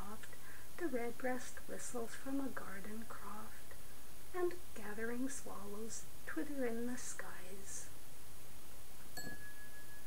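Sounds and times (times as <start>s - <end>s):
background hiss: 0.0s - 10.0s
bell-like tone ringing: 9.2s - 10.0s.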